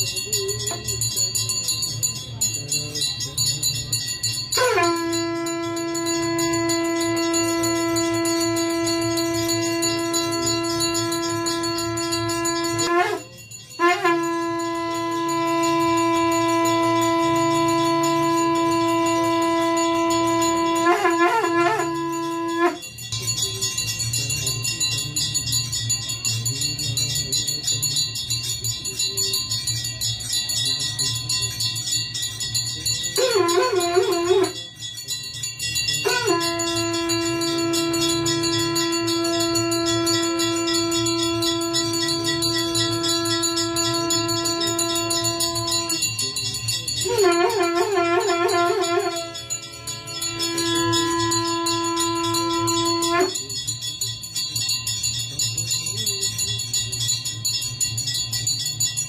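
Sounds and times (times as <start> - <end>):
conch shell blowing: 0.0 - 24.9, 27.9 - 54.9
temple bells ringing: 0.0 - 59.0.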